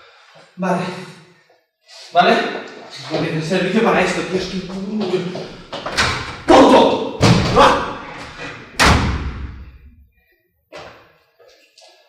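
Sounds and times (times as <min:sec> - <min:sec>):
loud thuds: 0:07.2 - 0:09.8.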